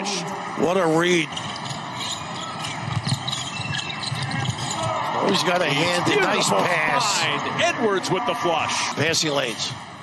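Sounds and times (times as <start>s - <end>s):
crowd hubbub: 0.0s - 9.3s.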